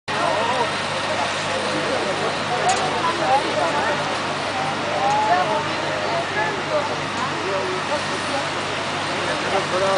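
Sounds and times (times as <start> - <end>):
fire engines idling: 0.1 - 9.9
people talking: 0.1 - 9.9.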